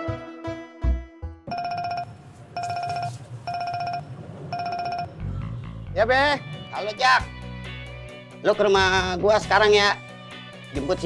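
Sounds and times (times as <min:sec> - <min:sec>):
phone ringtone trilling: 0:01.5 - 0:05.2.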